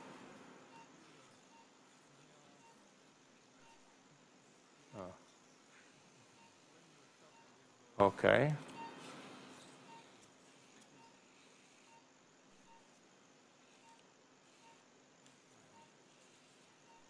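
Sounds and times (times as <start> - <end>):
faint short beep: 6.4 - 6.6, 11.0 - 11.2, 11.8 - 12.9, 15.7 - 15.9.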